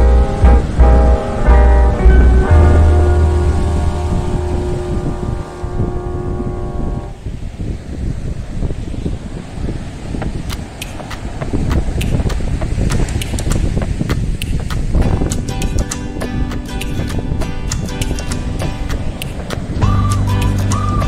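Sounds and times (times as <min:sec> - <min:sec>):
background music with held notes: 0:00.0 - 0:07.1, 0:15.0 - 0:21.0
surf on the shore: 0:00.0 - 0:21.0
wind buffeting microphone: 0:00.0 - 0:21.0
sharp clicks: 0:10.5 - 0:20.8.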